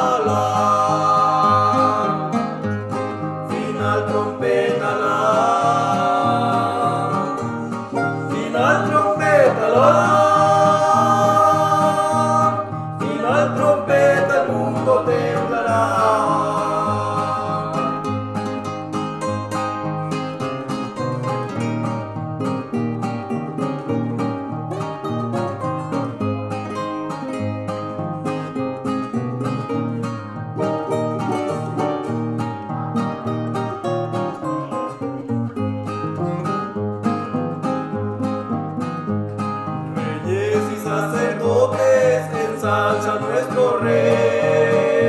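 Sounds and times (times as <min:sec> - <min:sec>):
people singing: 0:00.0 - 0:18.8, 0:40.0 - 0:45.0
nylon-string acoustic guitars: 0:00.0 - 0:45.0.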